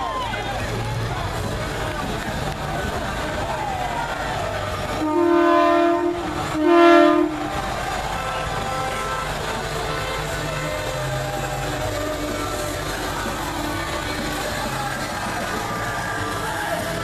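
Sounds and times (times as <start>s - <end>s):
truck air horn blasts: 4.9s - 14.3s.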